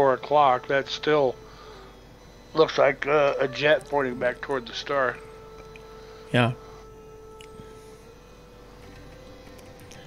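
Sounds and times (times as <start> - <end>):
background music of held tones: 0.0 - 10.0.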